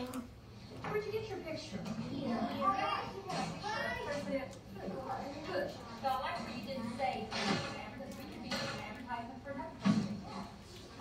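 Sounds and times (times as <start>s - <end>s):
children's voices: 0.0s - 8.7s
adult and child talking: 0.0s - 10.6s.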